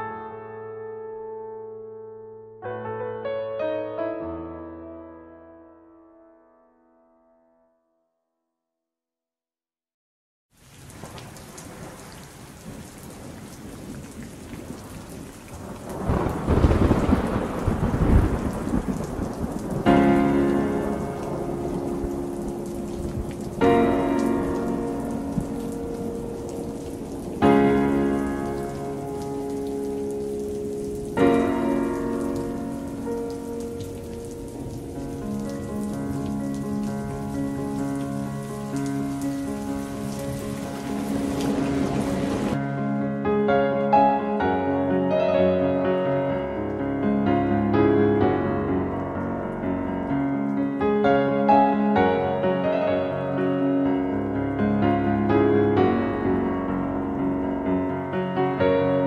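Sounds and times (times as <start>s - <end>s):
rain: 10.5s - 42.7s, 43.4s - 59.0s
thunder rumble: 10.8s - 42.6s
slow music chords: 19.9s - 45.7s.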